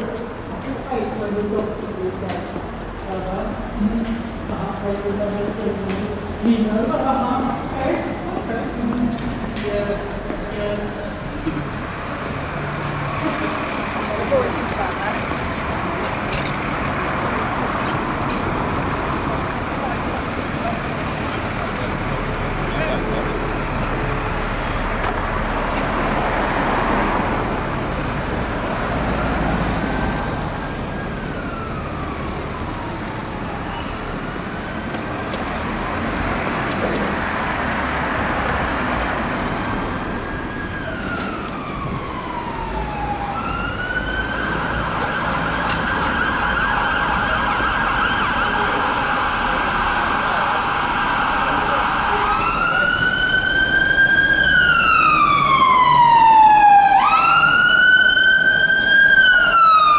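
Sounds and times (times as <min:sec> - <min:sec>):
emergency vehicle siren: 0:00.0 - 0:59.9
traffic noise: 0:00.0 - 0:59.9.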